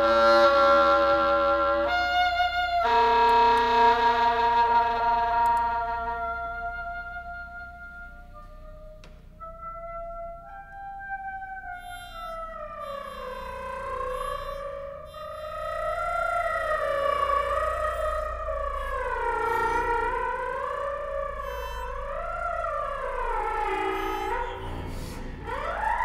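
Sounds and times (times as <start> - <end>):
gliding sustained pitched tone: 0.0 - 26.0
steady low hum: 3.4 - 26.0.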